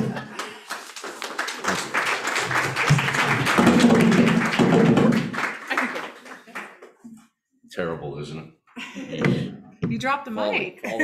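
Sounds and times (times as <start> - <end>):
audience clapping: 0.0 - 7.0
people talking and laughing: 8.8 - 11.0.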